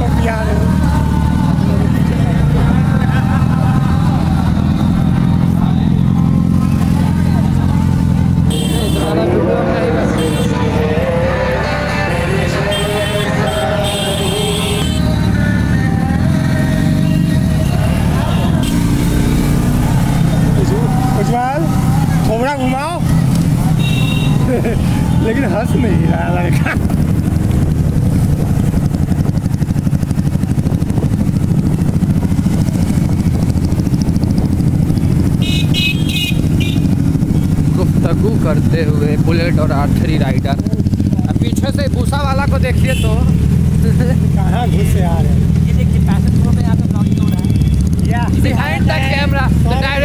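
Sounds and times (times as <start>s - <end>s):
voices: 0.0s - 27.6s, 33.1s - 50.0s
motorcycle engine droning: 0.0s - 50.0s
other motorcycle engines: 0.0s - 50.0s.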